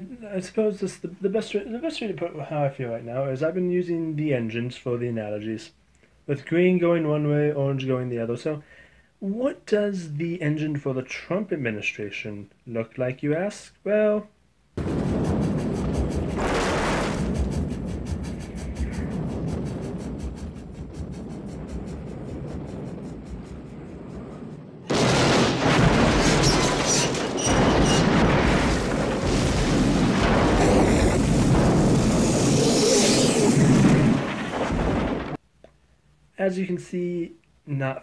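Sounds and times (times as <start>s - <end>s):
explosions: 14.8s - 35.4s
train crashing: 14.8s - 35.4s.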